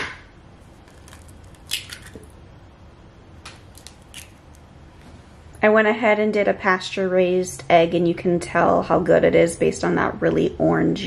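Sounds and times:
eggshell crackling: 0:00.6 - 0:02.4, 0:03.4 - 0:04.7.

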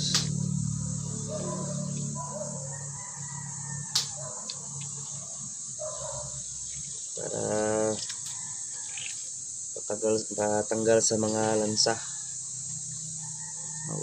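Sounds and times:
high-pitched insect chirring: 0:00.0 - 0:14.0.

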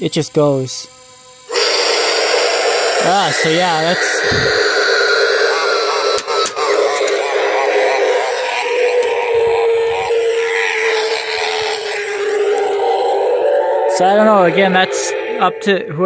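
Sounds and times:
sharp clicks: 0:06.1 - 0:07.7.

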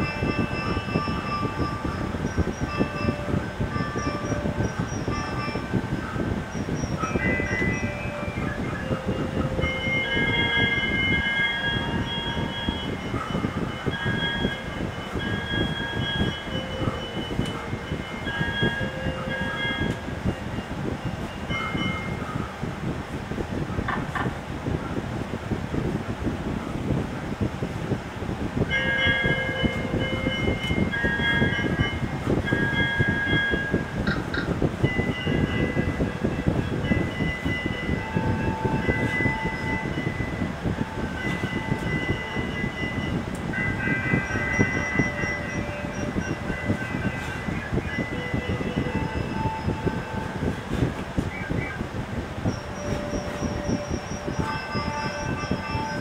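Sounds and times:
loud rumbling noise: 0:00.0 - 0:56.0.

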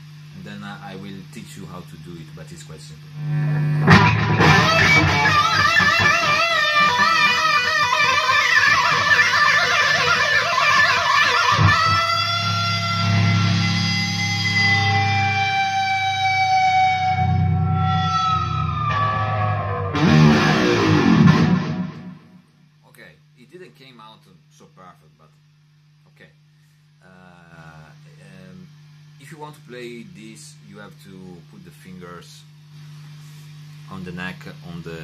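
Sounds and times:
low amp hum: 0:00.0 - 0:35.0
distorted electric guitar: 0:03.1 - 0:22.8.

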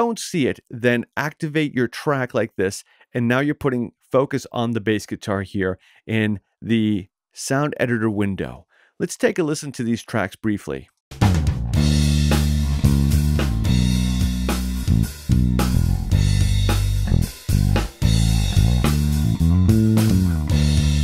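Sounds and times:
bass guitar line: 0:11.2 - 0:21.0.

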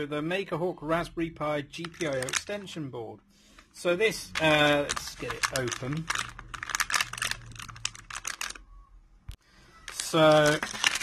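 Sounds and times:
plastic bag tearing and crinkling: 0:01.9 - 0:02.6, 0:04.3 - 0:08.7, 0:09.9 - 0:11.0.

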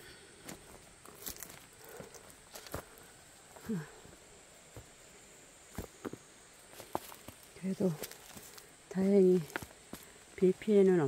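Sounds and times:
footsteps on stone and dry leaves: 0:00.4 - 0:05.0, 0:05.7 - 0:11.0.

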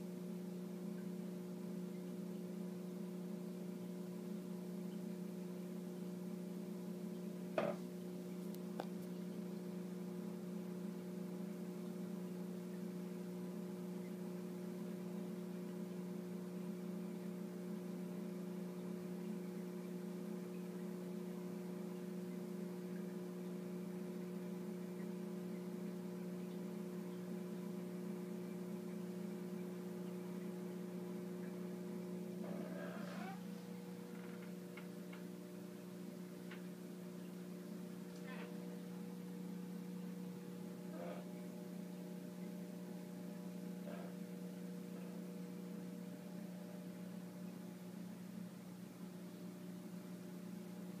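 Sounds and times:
electrical hum: 0:00.0 - 0:51.0.

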